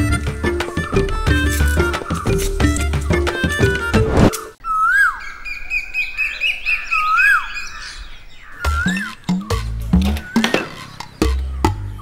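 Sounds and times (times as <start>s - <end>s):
birds chirping: 0.0s - 12.0s
whistled bird call: 4.6s - 9.6s.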